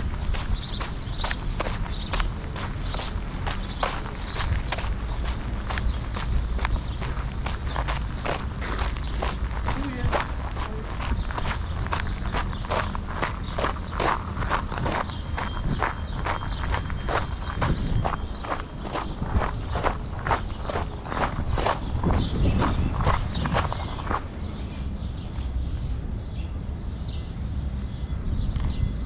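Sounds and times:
footsteps crunching on gravel: 0:00.0 - 0:24.7.

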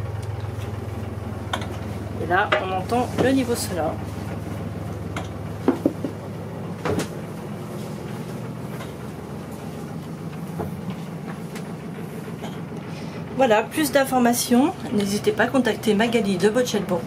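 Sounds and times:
diesel engine humming: 0:00.0 - 0:17.0.

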